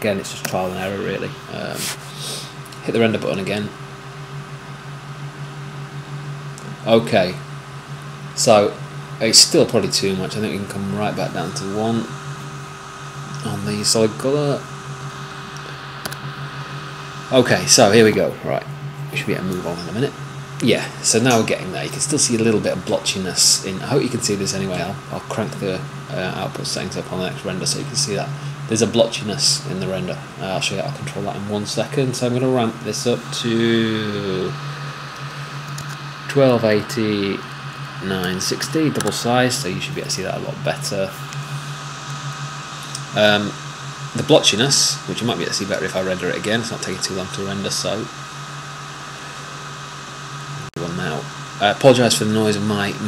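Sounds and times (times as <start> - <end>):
computer fans humming: 0.0 - 53.0
faint whining tones: 0.0 - 53.0
sharp click: 15.6 - 16.3.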